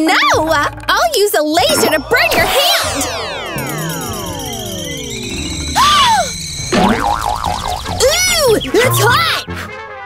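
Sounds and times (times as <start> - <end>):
warbling tone: 1.5 - 9.2
cartoon falling whistle: 1.7 - 9.1.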